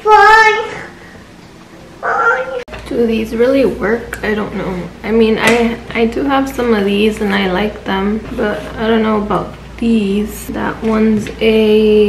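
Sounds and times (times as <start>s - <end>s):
high-pitched cry: 2.0s - 2.7s
woman speaking: 2.9s - 12.0s.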